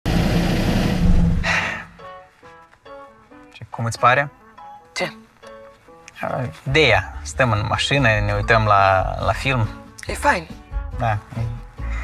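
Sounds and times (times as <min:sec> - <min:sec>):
car engine idling: 0:00.1 - 0:01.6
brief rush of noise: 0:00.1 - 0:01.9.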